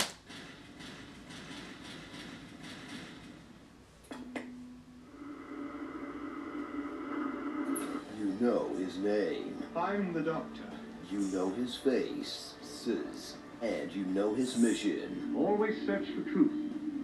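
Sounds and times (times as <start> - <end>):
low steady drone: 4.2 - 17.0.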